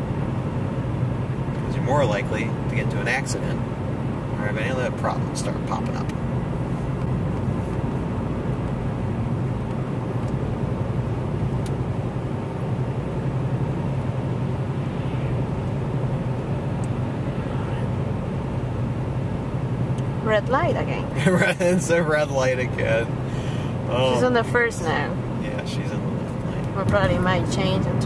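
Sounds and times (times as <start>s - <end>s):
car engine drone: 0.0s - 28.0s
road noise: 0.0s - 28.0s.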